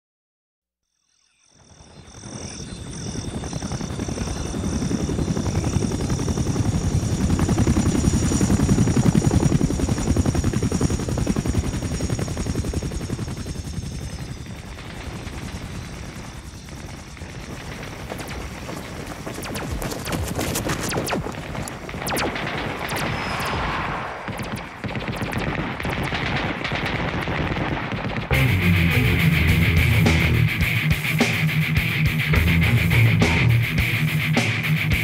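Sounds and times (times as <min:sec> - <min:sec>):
high pulsing chirp: 0:01.0 - 0:09.0, 0:19.4 - 0:25.4
helicopter rotor chopping: 0:02.1 - 0:35.0
sharp cracks: 0:17.8 - 0:28.4.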